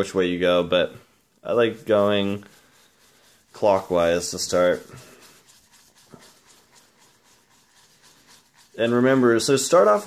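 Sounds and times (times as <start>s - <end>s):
shaving brush swishing in bowl: 1.4s - 10.0s.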